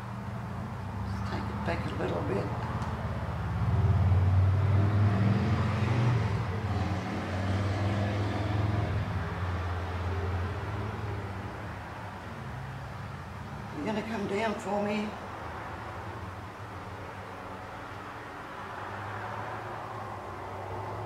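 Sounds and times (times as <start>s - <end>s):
vehicle engine rumble passing: 0.0s - 21.0s.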